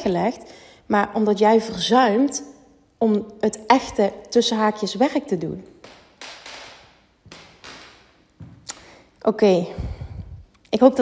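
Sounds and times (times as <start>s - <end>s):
woman speaking: 0.0s - 5.7s, 9.2s - 11.0s
soft breaths: 8.6s - 10.6s.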